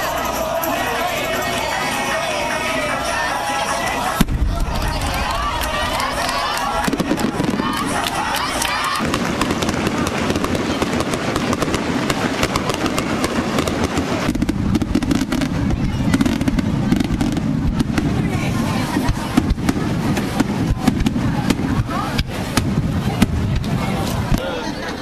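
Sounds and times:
crowd voices: 0:00.0 - 0:25.0
fireworks bangs and crackles: 0:04.1 - 0:24.5.

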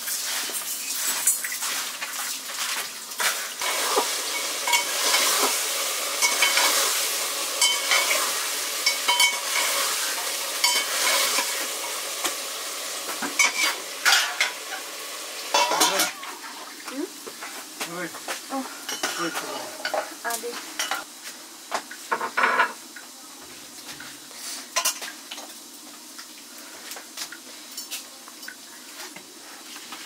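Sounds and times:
food sizzling in metal pan: 0:00.0 - 0:30.0
metal utensil scraping pan: 0:03.2 - 0:05.6, 0:06.2 - 0:12.0, 0:13.2 - 0:14.9, 0:15.5 - 0:16.2, 0:18.9 - 0:20.1.

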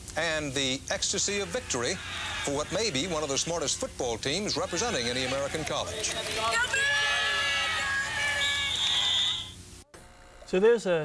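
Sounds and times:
held musical chords on television: 0:04.5 - 0:09.6.

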